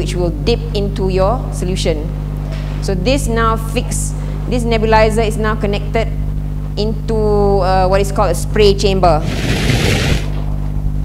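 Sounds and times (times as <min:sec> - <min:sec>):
low electrical hum: 0:00.0 - 0:11.0
brief rush of hiss: 0:09.2 - 0:10.4.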